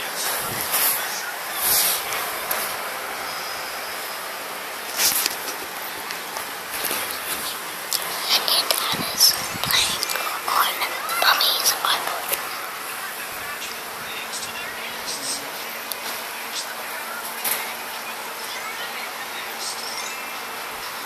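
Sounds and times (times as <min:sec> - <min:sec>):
faint low hum: 0:00.0 - 0:21.0
breathy noises: 0:00.2 - 0:13.1
child whispering: 0:06.9 - 0:12.6.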